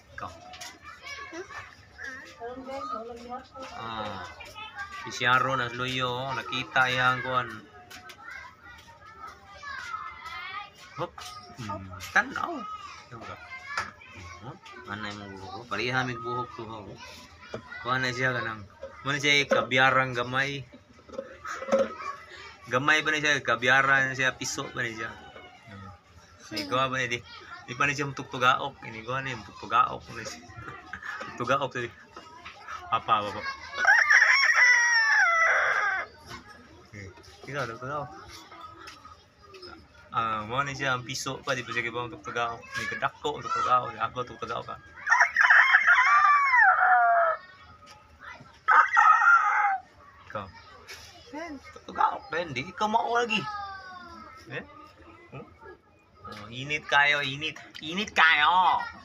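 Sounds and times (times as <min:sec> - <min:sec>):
faint children's voices: 0:00.0 - 0:59.0
rooster crowing: 0:33.8 - 0:36.1, 0:45.0 - 0:47.5, 0:48.7 - 0:49.9.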